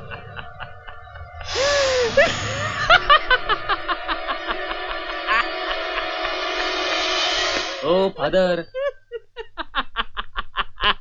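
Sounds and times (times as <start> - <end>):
man laughing heartily: 0.0 - 6.4, 8.7 - 11.0.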